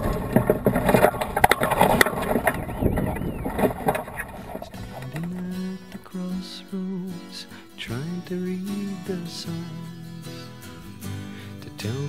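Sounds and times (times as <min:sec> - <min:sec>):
wind noise on microphone: 0:00.0 - 0:06.8
music: 0:04.7 - 0:12.0.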